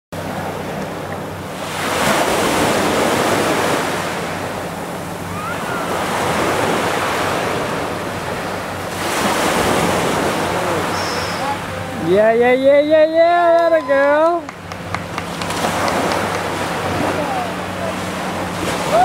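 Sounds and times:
ocean surf breaking: 0.2s - 19.0s.

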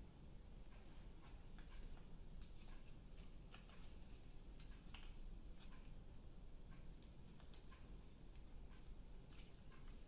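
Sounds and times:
low room hum: 0.0s - 10.0s
paper rustling and ticking: 0.7s - 6.0s, 6.7s - 10.0s.

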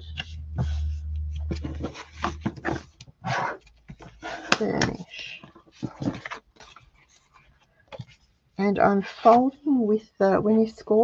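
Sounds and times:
card rustling and scraping: 0.0s - 8.4s, 9.0s - 9.6s.

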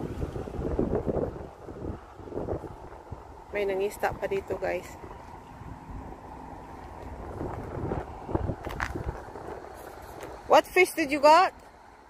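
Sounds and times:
outdoor background noise: 0.0s - 12.0s
wind buffeting microphone: 0.0s - 12.0s.

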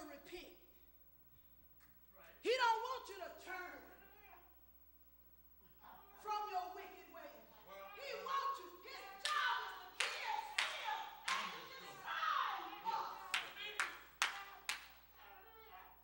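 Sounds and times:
person preaching: 2.4s - 4.5s, 5.7s - 16.0s
hand claps: 9.2s - 11.9s, 13.1s - 15.2s.

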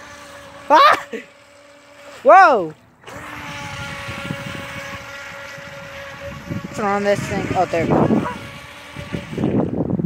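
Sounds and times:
toy boat electric motor whining: 0.0s - 10.0s.

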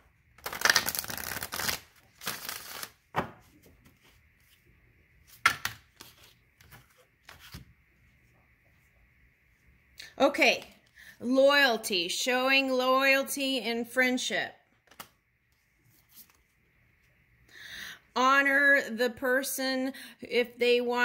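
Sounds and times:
cards shuffling: 0.4s - 4.6s, 5.2s - 7.7s, 14.8s - 15.2s.

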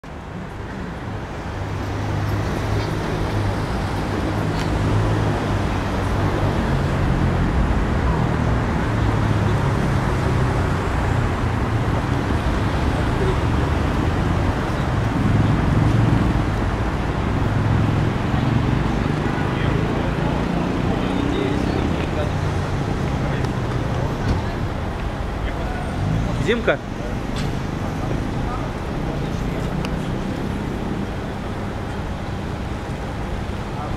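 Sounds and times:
road traffic rumble: 0.0s - 33.9s.

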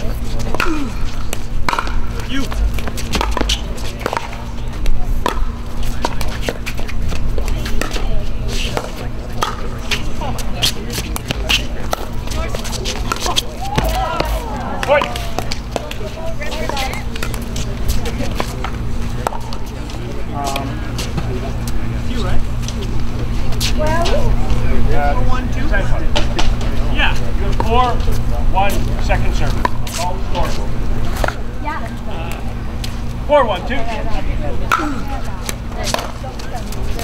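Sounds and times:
distant voices: 0.0s - 37.0s
steady low hum: 0.0s - 37.0s.

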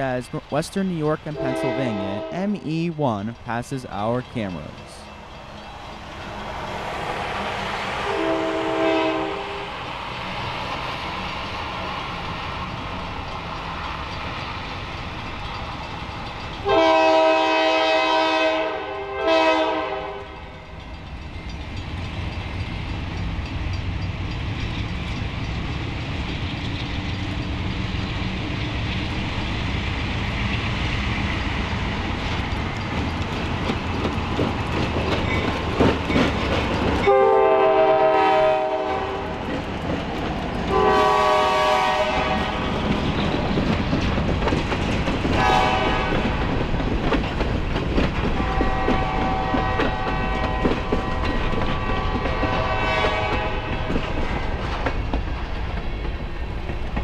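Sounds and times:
diesel locomotive engine rumble: 0.0s - 57.0s
train horn blasts: 1.4s - 2.5s, 8.0s - 9.8s, 16.6s - 20.4s, 37.0s - 39.4s, 40.7s - 42.6s, 45.4s - 46.3s, 48.4s - 53.9s
steel wheels clicking over rail joints: 10.2s - 16.7s, 20.2s - 37.1s, 39.2s - 40.8s, 42.2s - 57.0s.

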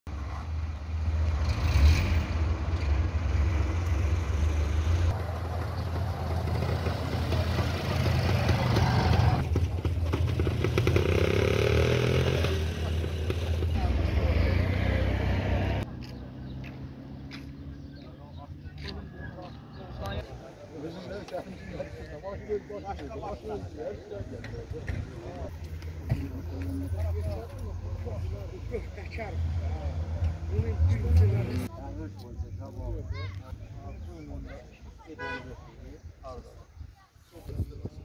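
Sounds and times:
voices: 5.1s - 38.0s
wind noise on microphone: 37.4s - 38.0s.

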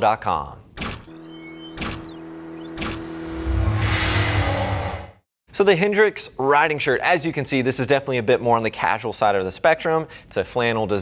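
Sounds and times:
sharp synth hits: 0.8s - 5.2s
held synth tone: 0.9s - 5.2s
bass-heavy swell: 1.2s - 5.3s
sweeping whooshes: 1.2s - 5.3s.

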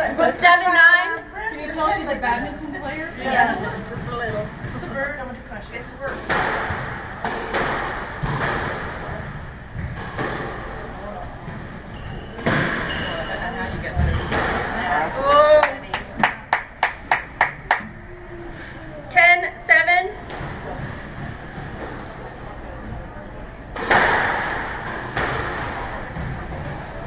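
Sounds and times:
squash ball hits: 6.1s - 9.2s, 12.4s - 13.0s, 23.7s - 26.4s
shoe squeak: 7.4s - 8.4s, 11.9s - 14.3s.

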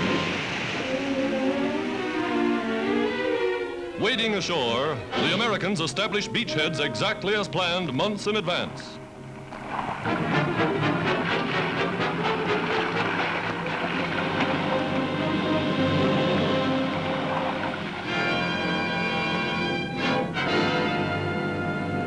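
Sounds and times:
orchestral score music: 0.0s - 22.0s.

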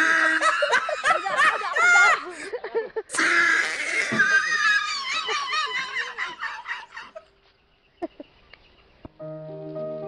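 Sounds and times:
shrill laughter or shrieking: 0.0s - 2.5s, 3.1s - 7.3s.

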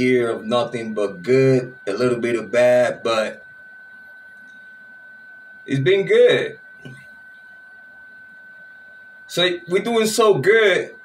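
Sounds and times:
high-pitched single-tone whine: 0.0s - 11.0s.

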